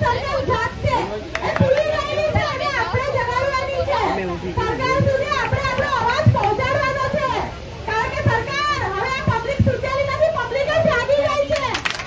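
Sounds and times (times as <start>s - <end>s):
woman talking into microphone: 0.0s - 11.8s.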